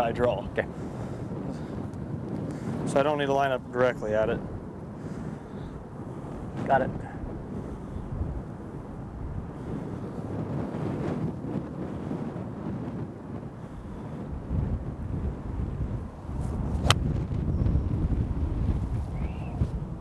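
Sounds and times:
wind buffeting microphone: 0.0s - 20.0s
golf club striking ball: 16.8s - 17.3s.

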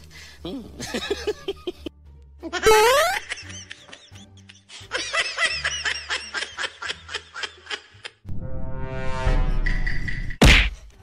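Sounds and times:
high-pitched laughter: 2.4s - 8.2s.

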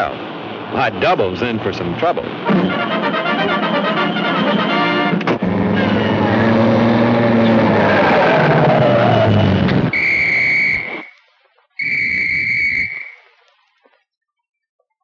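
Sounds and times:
brass-heavy orchestral music: 2.5s - 5.2s
high whistle-like tone blasts: 2.7s - 5.0s, 8.9s - 11.2s, 11.8s - 13.3s.

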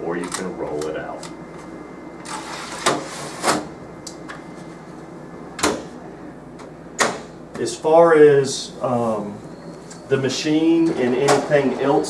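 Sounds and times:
copier panel closing clunks: 7.0s - 7.3s.

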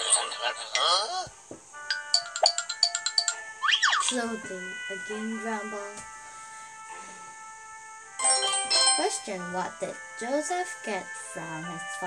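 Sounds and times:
bright chiming notes: 1.9s - 4.3s, 8.2s - 9.6s.

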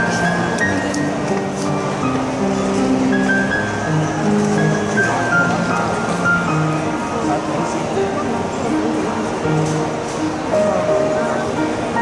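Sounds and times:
grand piano melody: 0.0s - 12.0s.

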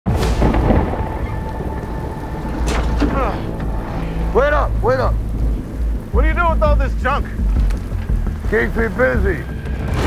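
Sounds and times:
deep low rumble: 0.1s - 10.0s
steady rain: 0.1s - 10.0s.

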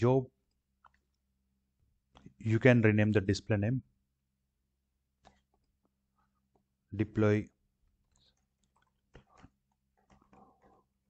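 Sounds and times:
faint keyboard typing: 0.4s - 2.4s, 5.1s - 6.8s, 7.8s - 11.0s.

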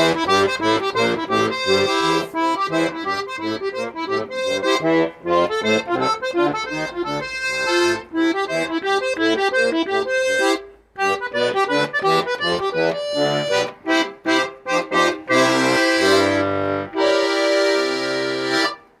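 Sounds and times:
button accordion playing: 0.0s - 19.0s.

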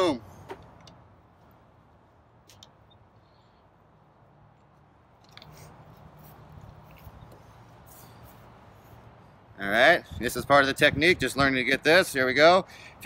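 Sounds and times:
light clicks and rustles of handling: 4.5s - 9.1s.

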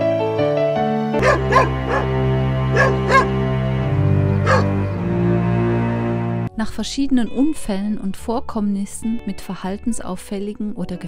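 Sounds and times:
background music with low notes: 0.0s - 11.0s
dog barking: 1.2s - 3.4s, 4.4s - 4.8s.

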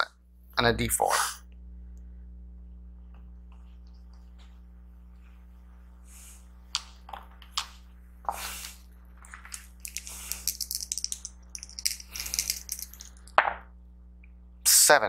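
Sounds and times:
dice rattling in a tray: 9.2s - 13.3s.

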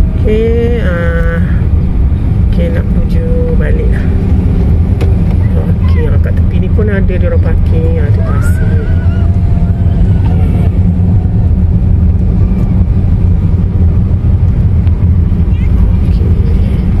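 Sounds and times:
car engine rumble: 0.0s - 17.0s
road noise: 0.0s - 17.0s.

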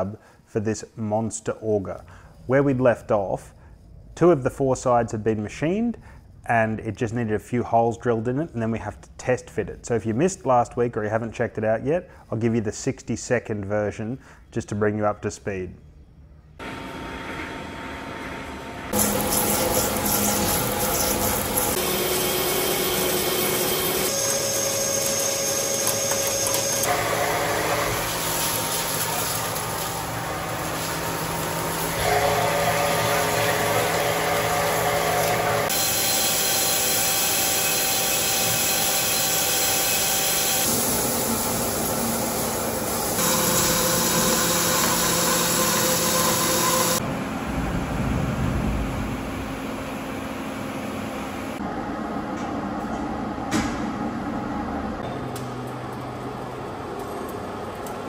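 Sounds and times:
lathe running: 16.6s - 48.0s
cutting tool tones: 19.0s - 47.0s.

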